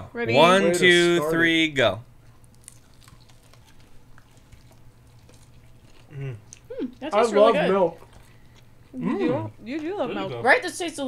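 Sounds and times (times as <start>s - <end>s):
wet mouth clicks chewing: 2.3s - 6.7s.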